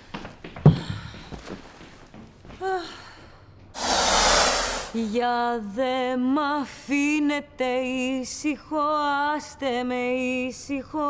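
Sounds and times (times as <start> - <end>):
whoosh sound effect: 3.8 - 5.1.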